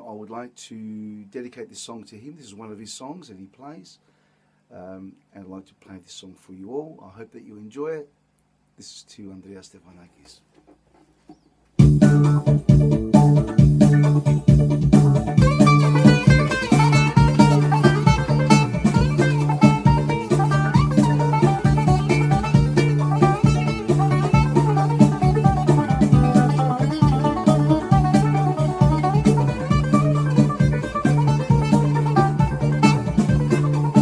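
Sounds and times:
bouzouki melody: 0:11.8 - 0:34.0.

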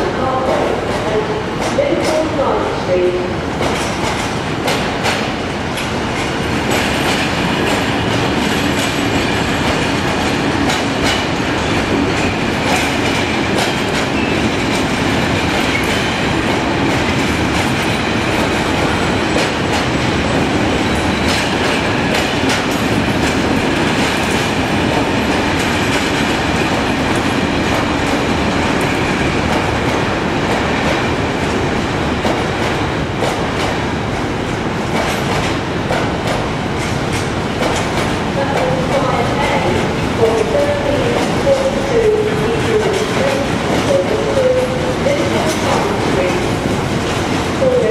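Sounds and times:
freight train rolling past: 0:00.0 - 0:47.9
train wheels clicking over rail joints: 0:00.4 - 0:02.3, 0:03.6 - 0:47.8.

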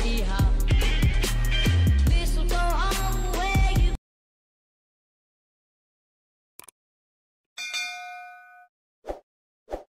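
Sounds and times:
bell-like notification ding: 0:07.6 - 0:08.7.

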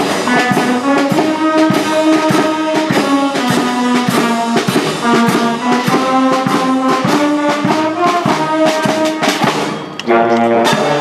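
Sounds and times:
brass band playing a march: 0:00.0 - 0:11.0
regular drum beats: 0:00.0 - 0:11.0.

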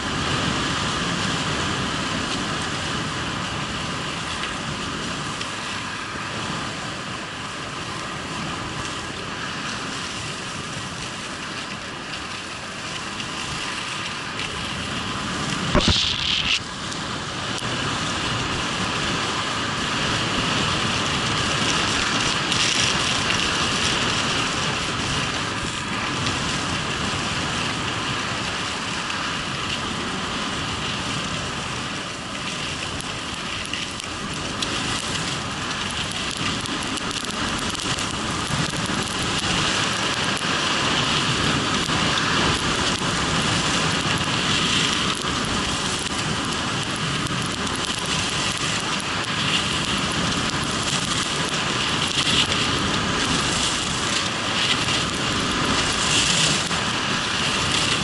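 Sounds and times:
wind rushing over microphone: 0:00.0 - 0:58.0
skis scraping on snow: 0:11.2 - 0:17.1, 0:31.7 - 0:58.0.

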